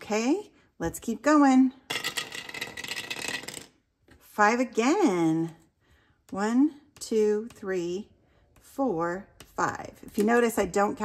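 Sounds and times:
die clattering down dice tower: 1.9 - 3.7.

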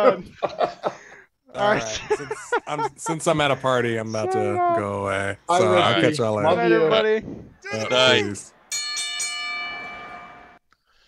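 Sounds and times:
bell ringing: 8.7 - 10.6.

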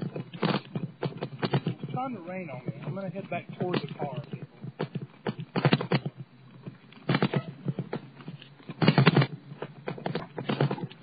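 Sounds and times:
bicycle rattling over pavement: 0.0 - 11.0.

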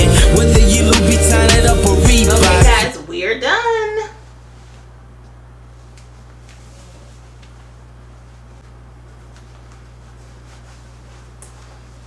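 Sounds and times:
woman's wordless exclamation: 2.9 - 4.2.

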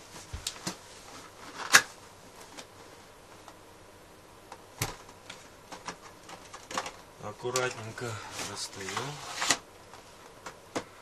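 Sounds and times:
cardboard packaging scraping: 7.8 - 9.6.

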